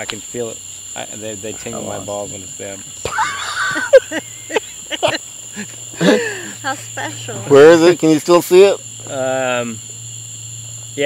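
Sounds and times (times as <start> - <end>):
crickets trilling: 0.0 - 11.0.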